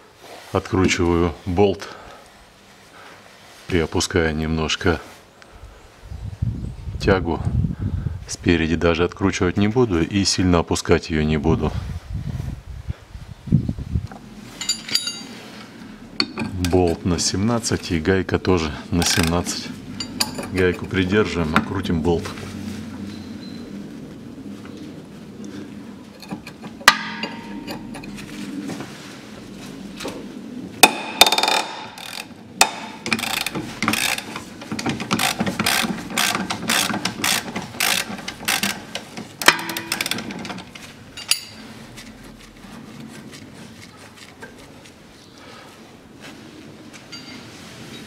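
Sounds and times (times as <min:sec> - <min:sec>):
sharp metal clinks: 0:14.6 - 0:15.4
ratchet wrench clicking: 0:31.2 - 0:40.4.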